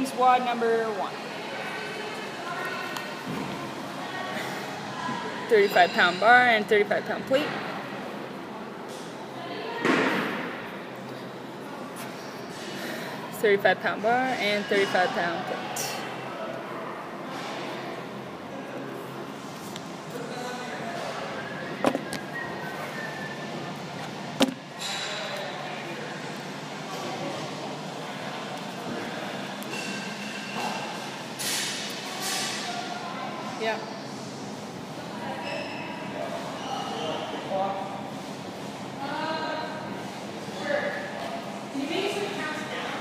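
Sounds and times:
faint voices murmuring: 1.0 - 43.0.

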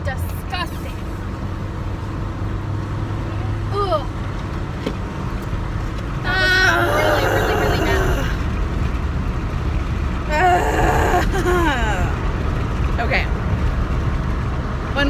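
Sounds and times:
car road and engine noise: 0.0 - 15.0
woman groaning: 6.3 - 8.5, 10.3 - 12.3.

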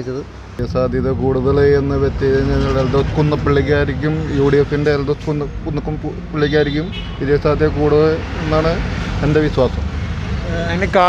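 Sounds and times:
man speaking: 0.0 - 9.8
vehicle and street noise: 0.0 - 11.0.

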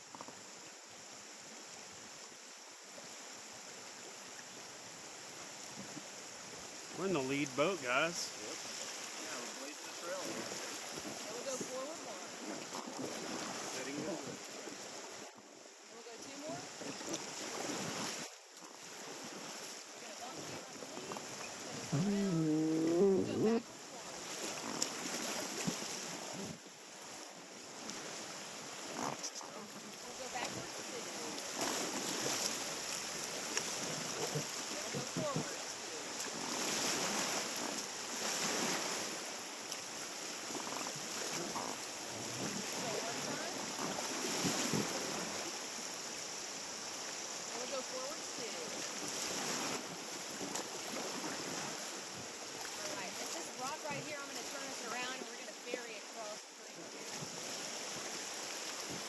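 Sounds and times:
river water rushing over rocks: 0.0 - 59.0.

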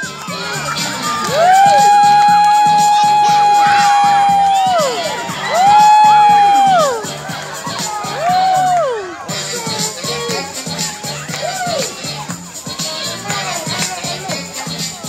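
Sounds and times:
background music with steady beat: 0.0 - 15.0
children calling out together: 0.0 - 15.0.

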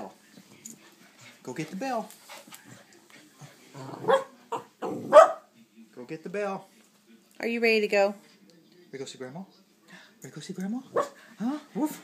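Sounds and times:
small dog barking: 4.0 - 5.5.

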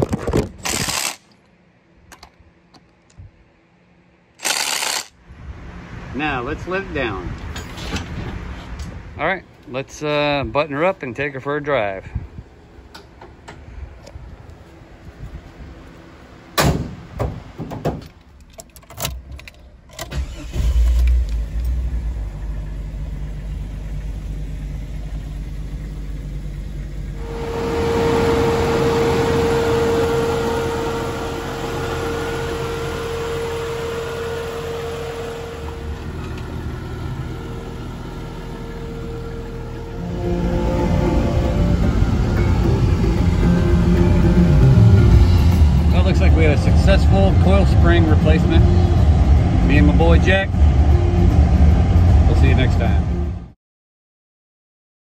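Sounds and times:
car hood slamming: 16.6 - 18.1
car engine running: 19.2 - 53.5
steady single tone: 26.9 - 36.1, 37.3 - 46.0.

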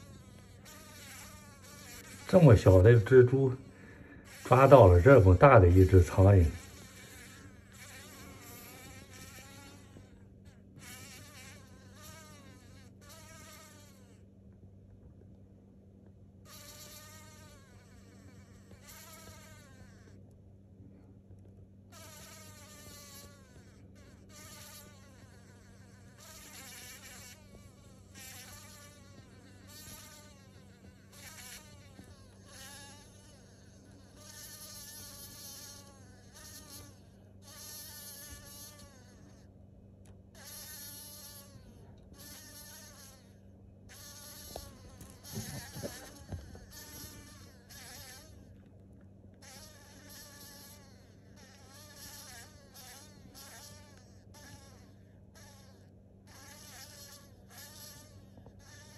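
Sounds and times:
blowfly buzzing in bursts: 0.0 - 14.3, 16.4 - 20.3, 21.9 - 39.5, 40.3 - 48.6, 49.4 - 58.9.

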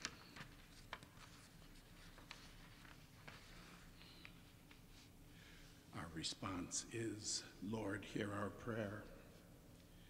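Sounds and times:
paper rustling: 0.0 - 5.1.

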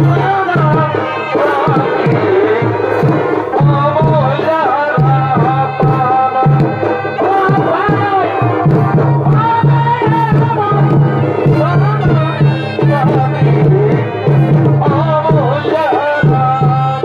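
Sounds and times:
reed-pipe melody: 0.0 - 17.0
rhythmic drumming: 0.0 - 17.0.

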